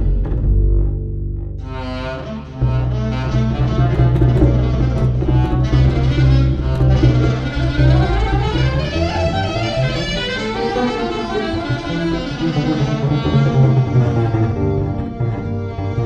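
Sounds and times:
double bass sustained low notes: 0:00.0 - 0:16.0
higher melodic lines: 0:02.5 - 0:16.0.

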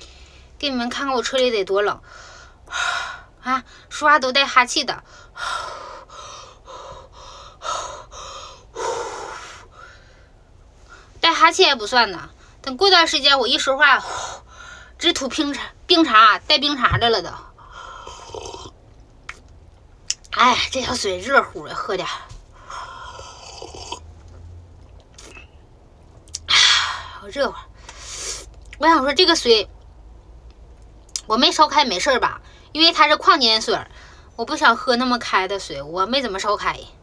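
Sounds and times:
person sipping water: 0:18.0 - 0:18.8, 0:23.0 - 0:24.1, 0:24.8 - 0:25.5.

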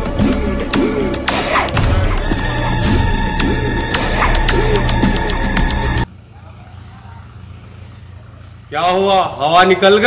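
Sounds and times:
chase background music: 0:00.0 - 0:06.1.

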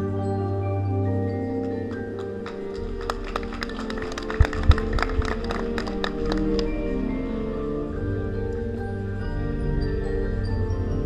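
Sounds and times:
marching band playing: 0:02.4 - 0:07.6.

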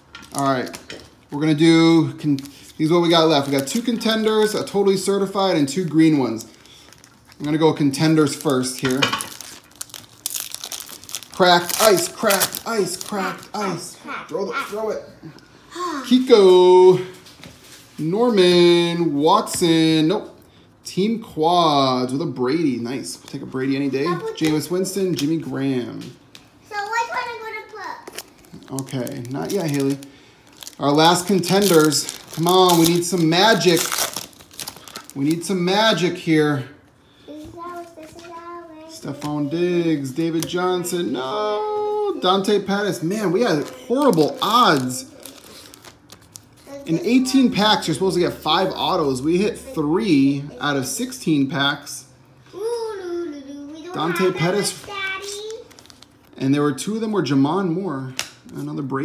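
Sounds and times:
foil wrapper crackling: 0:02.2 - 0:04.6, 0:05.8 - 0:13.7, 0:28.0 - 0:36.0, 0:43.3 - 0:46.8, 0:54.1 - 0:56.4.

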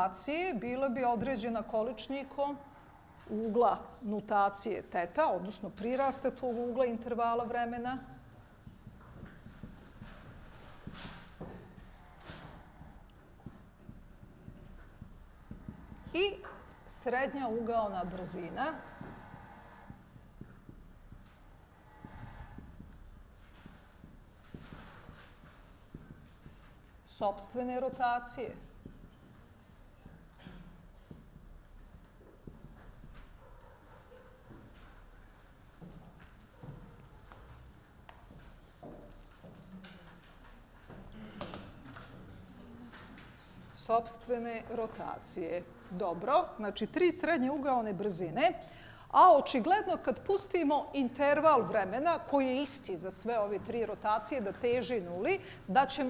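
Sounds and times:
marker writing on a whiteboard: 0:00.3 - 0:48.6
footsteps on hard floor: 0:05.8 - 0:39.8.

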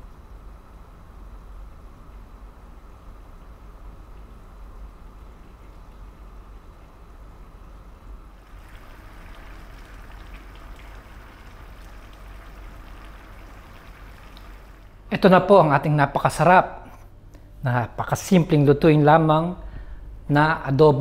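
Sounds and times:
low steady hum: 0:00.0 - 0:21.0
liquid bubbling in a pot: 0:08.4 - 0:15.1.

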